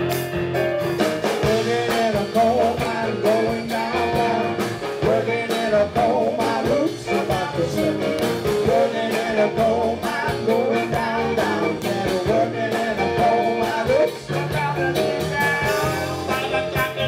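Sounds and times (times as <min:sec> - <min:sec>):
drums keeping a steady beat: 0:00.0 - 0:17.0
live rock band playing: 0:00.0 - 0:17.0
stage piano: 0:00.0 - 0:17.0
man singing: 0:01.3 - 0:17.0.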